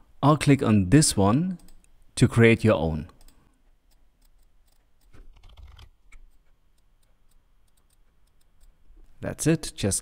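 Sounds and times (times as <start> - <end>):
faint keyboard typing: 3.1 - 8.8.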